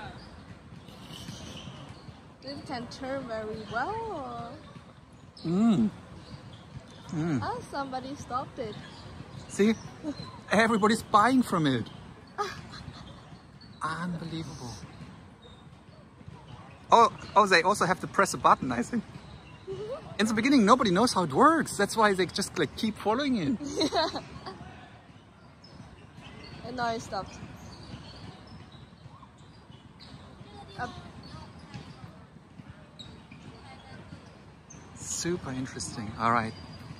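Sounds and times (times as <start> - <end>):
distant indistinct voices: 0.0 - 36.9
outdoor background noise: 0.0 - 36.9.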